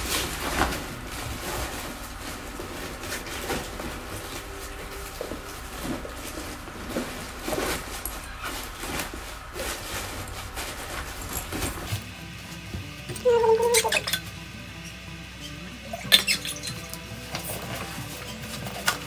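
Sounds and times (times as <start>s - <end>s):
fabric backpack rustling: 0.0s - 13.5s
steady low hum: 0.0s - 19.0s.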